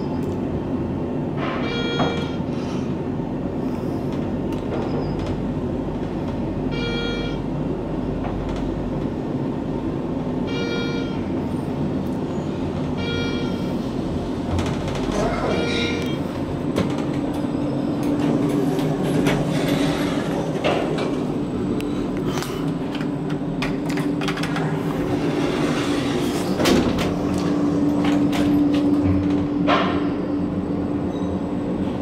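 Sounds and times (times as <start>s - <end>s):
elevator running hum: 0.0s - 32.0s
elevator floor chime: 1.6s - 2.4s, 6.7s - 7.4s, 10.4s - 11.3s, 13.0s - 13.8s.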